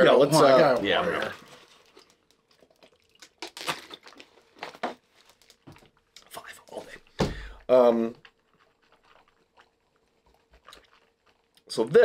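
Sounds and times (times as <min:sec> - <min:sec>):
plastic water bottle crinkling: 0:00.7 - 0:06.2.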